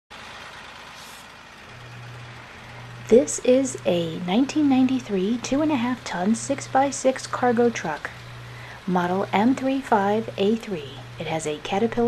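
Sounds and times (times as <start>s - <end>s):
diesel truck engine running: 0.1s - 12.0s
low steady hum: 1.6s - 12.0s.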